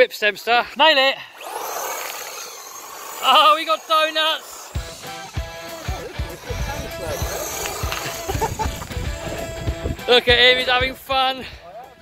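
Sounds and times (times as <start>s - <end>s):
high motor whine: 1.3s - 10.7s.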